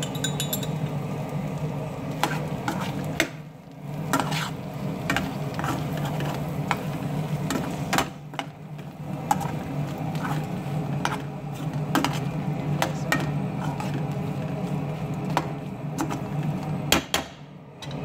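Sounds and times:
light sizzle: 0.0 - 16.9
metal spoon scraping frying pan: 4.1 - 6.4.

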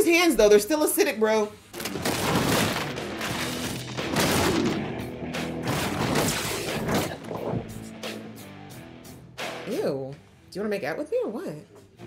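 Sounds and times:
hits and crashes: 1.8 - 7.9
action soundtrack music: 1.8 - 10.4.

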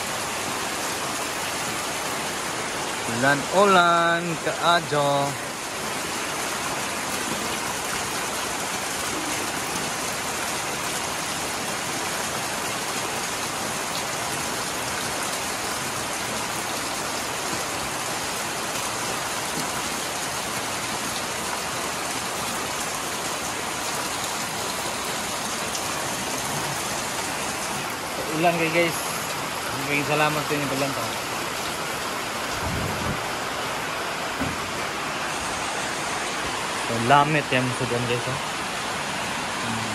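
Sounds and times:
heavy rain on roofs: 0.0 - 39.9.

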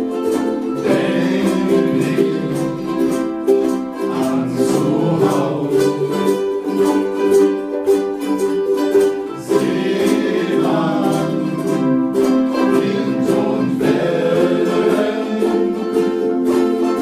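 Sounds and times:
ukuleles strumming chords: 0.0 - 17.0.

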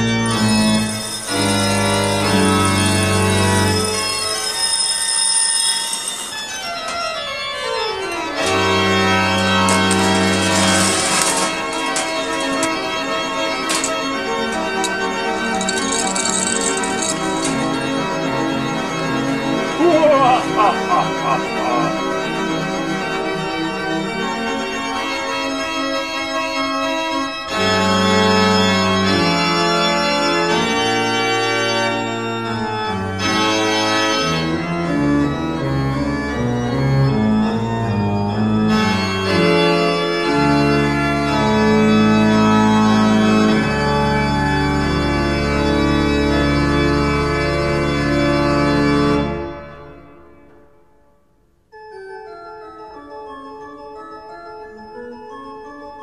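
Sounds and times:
organ music: 0.0 - 50.4.

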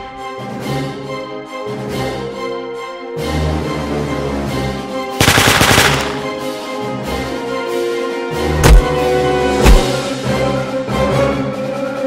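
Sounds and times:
background music with held tones: 0.0 - 12.0
automatic rifle fire: 5.2 - 6.4.

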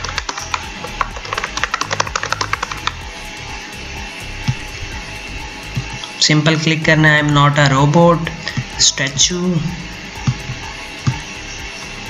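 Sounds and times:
computer keyboard typing: 0.0 - 3.1
background music: 0.0 - 12.0.

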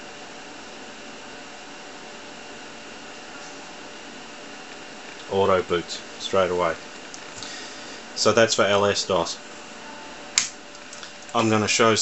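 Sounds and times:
computer whirring and hissing: 0.0 - 12.0.

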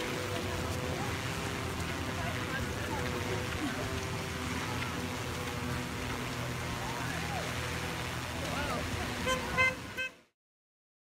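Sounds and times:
crowd chatter and cheering: 0.0 - 10.0
short horn toots: 9.2 - 10.2.

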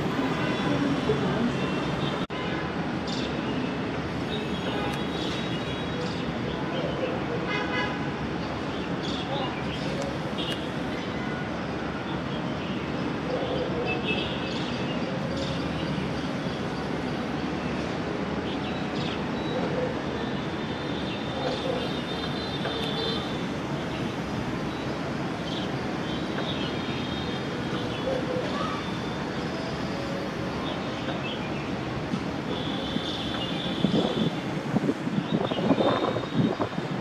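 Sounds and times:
distant city traffic hum: 0.0 - 37.0.

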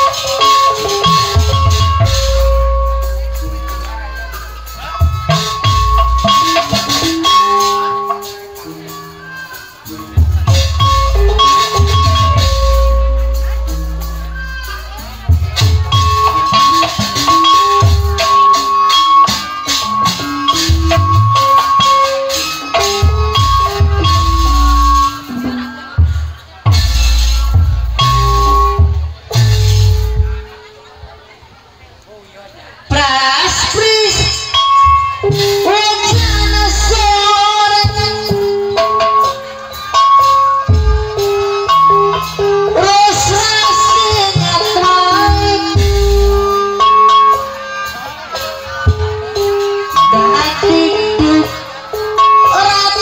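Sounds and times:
rattling percussion: 0.0 - 30.5, 33.5 - 53.0
metallophone notes: 0.0 - 30.8, 33.0 - 53.0
drum and gong strokes: 9.8 - 30.5.

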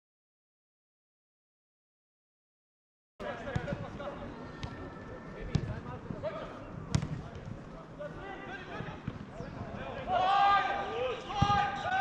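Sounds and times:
football kick thuds: 6.9 - 7.2
distant players shouting: 10.0 - 12.0.

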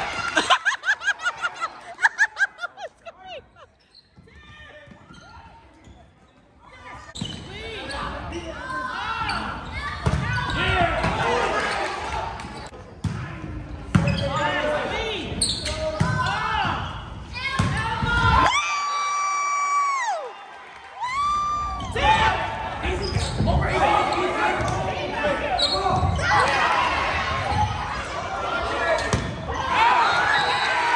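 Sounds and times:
sneakers squeaking on floor: 3.6 - 10.7, 13.9 - 14.6, 15.4 - 16.4, 22.9 - 24.8, 25.5 - 26.3.

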